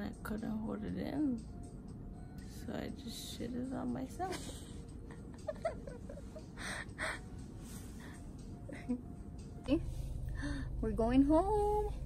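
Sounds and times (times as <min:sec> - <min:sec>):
woman giggling: 0:04.2 - 0:07.2, 0:08.7 - 0:09.1.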